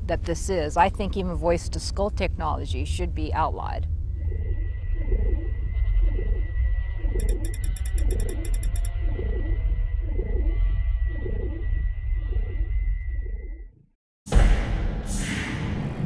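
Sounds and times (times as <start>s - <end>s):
deep rumbling drone: 0.0s - 13.8s
low pulsing sound: 0.0s - 13.8s
rapid crackle of high clicks: 7.2s - 8.9s.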